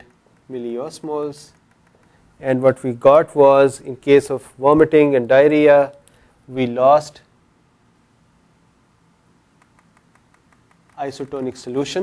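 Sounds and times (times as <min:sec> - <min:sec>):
marker strokes on whiteboard: 0:09.6 - 0:12.0.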